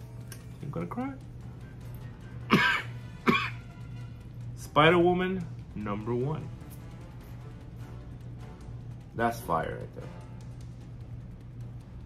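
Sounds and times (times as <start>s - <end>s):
man coughing: 2.4s - 3.7s.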